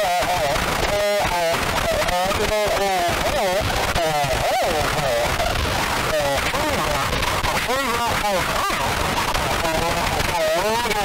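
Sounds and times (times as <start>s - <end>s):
distorted harsh noise: 0.0s - 11.0s.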